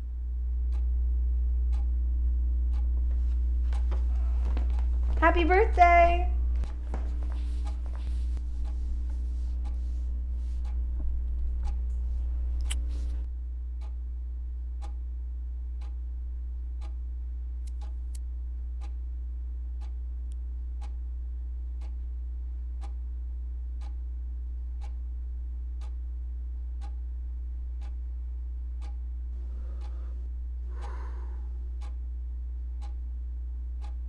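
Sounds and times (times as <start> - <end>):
steady low hum: 0.0 - 34.0
clock ticking: 0.6 - 2.0, 2.6 - 14.0, 14.8 - 15.0, 15.8 - 16.0, 16.8 - 17.0, 17.6 - 18.2, 18.8 - 19.0, 19.8 - 20.0, 20.8 - 21.0, 21.8 - 22.1, 22.8 - 23.0, 23.8 - 24.0, 24.8 - 25.1, 25.8 - 26.1, 26.8 - 27.1, 27.7 - 28.1, 28.7 - 32.1, 32.8 - 33.1, 33.8 - 34.0.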